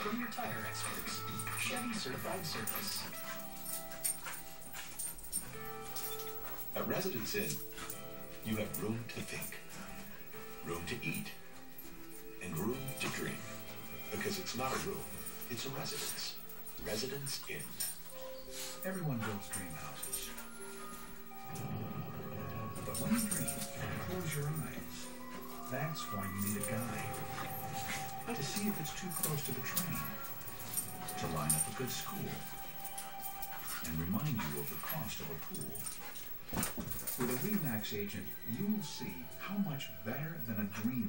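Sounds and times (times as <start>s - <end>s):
dogs play-fighting: 0.0s - 41.0s
television commercial music: 0.0s - 41.0s.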